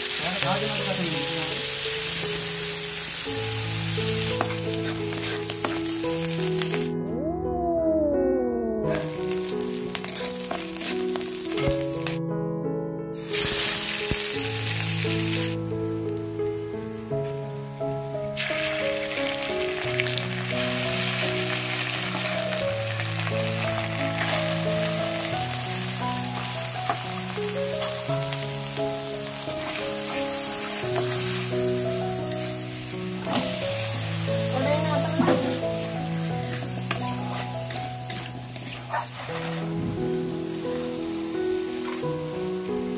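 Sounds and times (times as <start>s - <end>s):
oil sizzling: 0.0s - 7.0s, 8.8s - 12.2s, 13.2s - 42.9s
slow background music: 0.0s - 42.9s.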